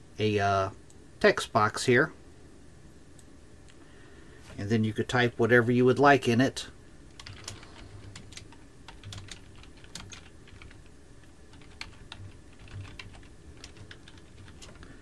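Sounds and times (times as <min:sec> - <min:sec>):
person speaking: 0:04.5 - 0:08.2
computer keyboard typing: 0:07.1 - 0:10.9, 0:11.5 - 0:14.9.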